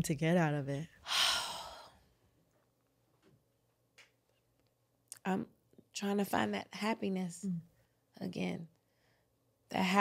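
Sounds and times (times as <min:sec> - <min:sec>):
woman sighing: 0:01.0 - 0:02.0.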